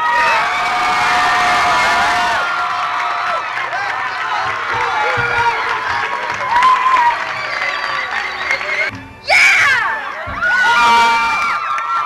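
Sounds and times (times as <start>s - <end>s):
audience cheering and screaming: 0.0s - 8.9s, 9.5s - 12.0s.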